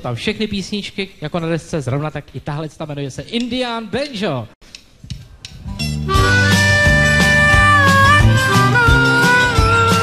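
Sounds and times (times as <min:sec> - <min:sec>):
live country band playing: 0:05.9 - 0:10.0.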